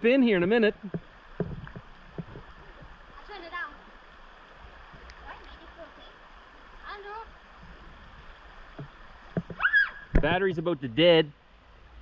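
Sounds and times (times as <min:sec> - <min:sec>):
river flowing: 0:00.0 - 0:12.0
child's high rising call: 0:09.6 - 0:10.0.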